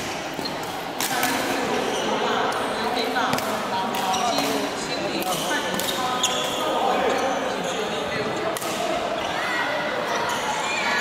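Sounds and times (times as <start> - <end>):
echoing voices and chatter: 0.0 - 11.0
rackets striking shuttlecocks: 3.3 - 6.1.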